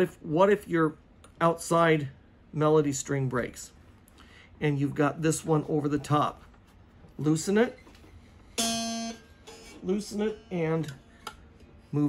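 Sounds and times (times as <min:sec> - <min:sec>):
dulcimer string plucked: 0:08.6 - 0:11.4.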